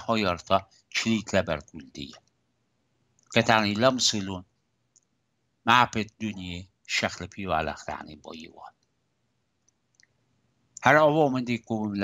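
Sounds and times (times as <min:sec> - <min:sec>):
man speaking into a microphone: 0:00.0 - 0:02.2, 0:03.4 - 0:04.4, 0:05.7 - 0:08.7, 0:10.8 - 0:12.0
faint clicks: 0:02.1 - 0:02.4, 0:03.1 - 0:03.4, 0:04.9 - 0:05.2, 0:09.6 - 0:10.9.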